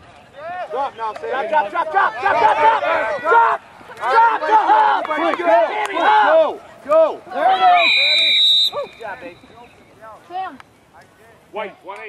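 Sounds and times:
voices shouting: 0:00.3 - 0:10.6
referee's whistle blast: 0:07.6 - 0:09.6.

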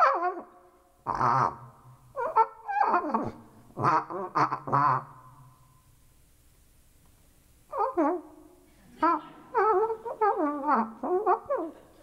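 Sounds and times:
calls blown through plastic tubing: 0:01.1 - 0:05.8, 0:09.0 - 0:11.6.

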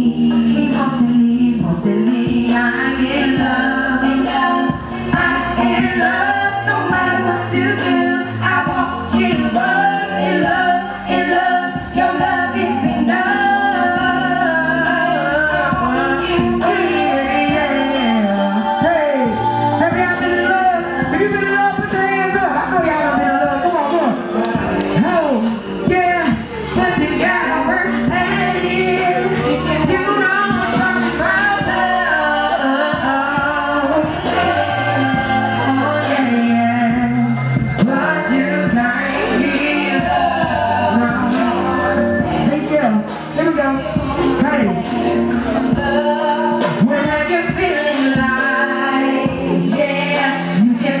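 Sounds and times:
backing music with bass line: 0:00.0 - 0:51.0
person singing: 0:00.0 - 0:51.0.

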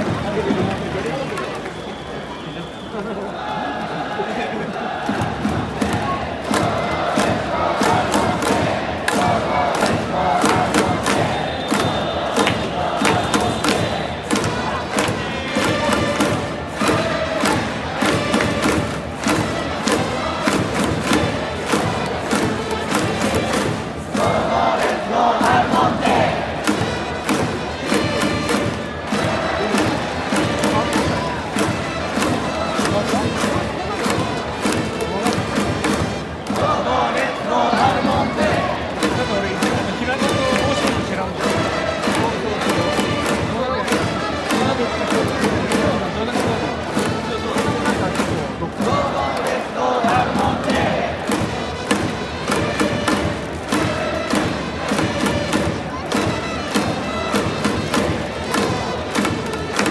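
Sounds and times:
music: 0:00.0 - 0:02.4, 0:03.4 - 0:59.9
crowd chanting: 0:00.0 - 0:59.9
rhythmic clapping: 0:00.0 - 0:59.9.

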